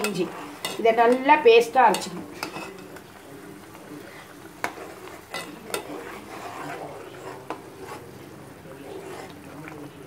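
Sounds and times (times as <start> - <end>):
chili paste sizzling in pan: 0.0 - 10.0
spoon stirring: 0.0 - 10.0.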